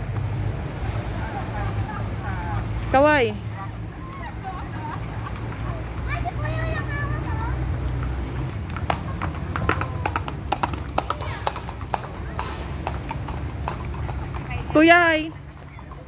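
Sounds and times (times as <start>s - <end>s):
horse hooves on pavement: 0.0s - 16.0s.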